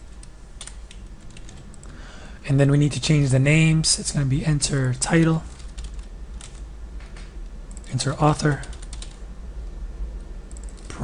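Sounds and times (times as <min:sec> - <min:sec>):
low background hum: 0:00.0 - 0:11.0
keyboard typing: 0:05.5 - 0:09.2, 0:10.5 - 0:11.0.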